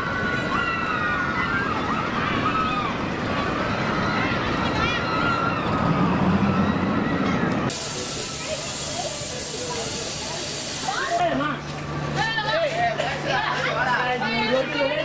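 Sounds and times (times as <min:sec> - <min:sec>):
people chattering: 0:00.0 - 0:15.0
machinery: 0:07.2 - 0:11.2
steady hiss: 0:07.7 - 0:11.2.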